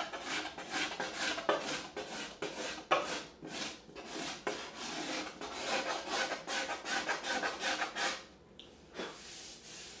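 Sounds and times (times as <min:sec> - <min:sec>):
steel scraper rasping on wood: 0:00.0 - 0:08.3.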